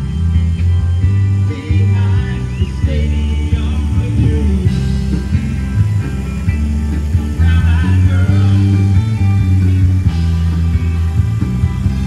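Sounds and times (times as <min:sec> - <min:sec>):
bass notes: 0:00.0 - 0:12.0
bending guitar lines: 0:00.0 - 0:12.0
live band playing loud: 0:00.0 - 0:12.0.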